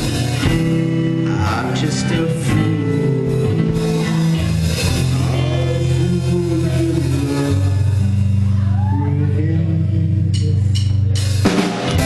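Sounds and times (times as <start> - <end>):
rock band electric guitar and bass: 0.0 - 12.0.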